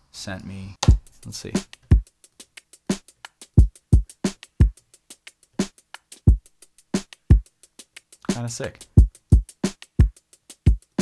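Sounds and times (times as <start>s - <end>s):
ticking hi-hats: 0.8s - 11.0s
snare drum: 2.9s - 4.8s, 7.0s - 7.5s, 8.3s - 11.0s.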